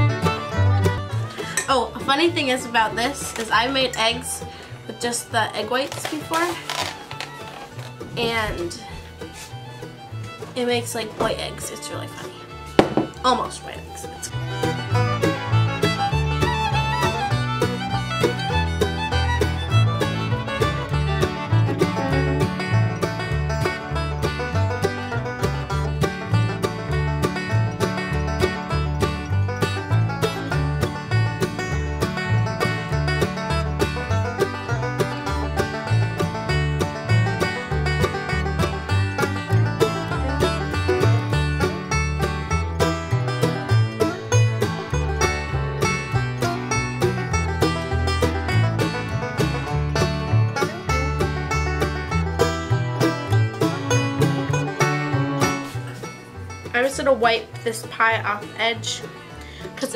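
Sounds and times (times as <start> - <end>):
bluegrass music with picked banjo: 0.0 - 59.9.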